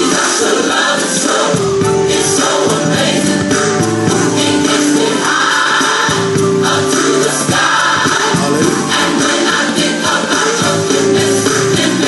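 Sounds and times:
gospel choir singing: 0:00.0 - 0:12.0.

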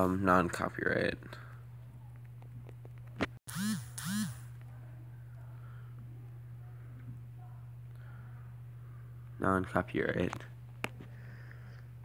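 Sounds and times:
low hum: 0:01.3 - 0:09.4.

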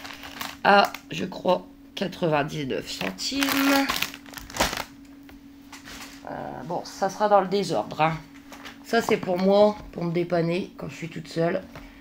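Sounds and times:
plastic packaging crinkling: 0:00.0 - 0:01.3, 0:02.9 - 0:05.1
faint steady hum: 0:00.0 - 0:12.0.

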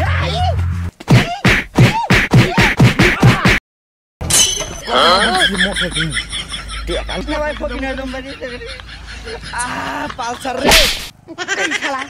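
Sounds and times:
slap to the face: 0:01.0 - 0:03.6, 0:10.6 - 0:11.1.

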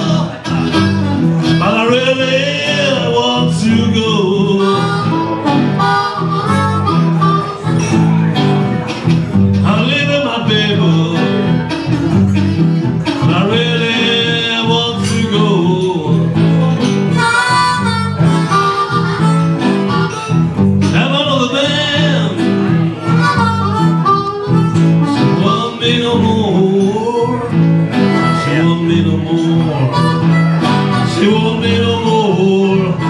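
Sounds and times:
blues harmonica: 0:00.0 - 0:33.0
resonator guitar rhythm: 0:00.0 - 0:33.0.

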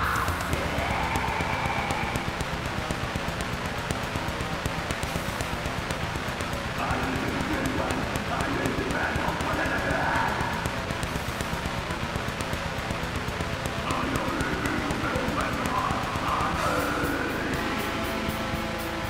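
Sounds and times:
harsh vocals: 0:00.0 - 0:04.4, 0:06.4 - 0:19.0
distorted guitars: 0:00.0 - 0:19.0
fast programmed drums: 0:00.0 - 0:19.0.

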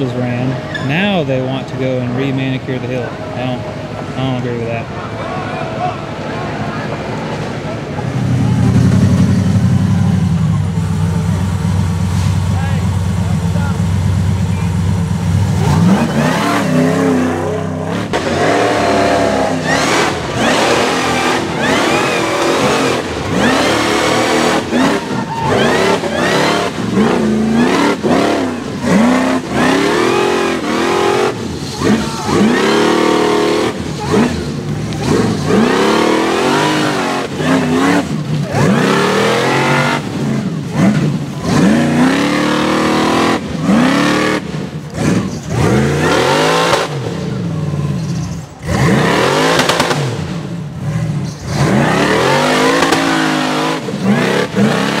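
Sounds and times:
buggy engine revving: 0:00.0 - 0:55.0.

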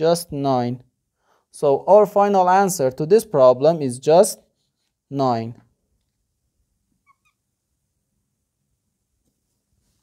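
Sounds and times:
marker squeaking on whiteboard: 0:07.0 - 0:07.5.

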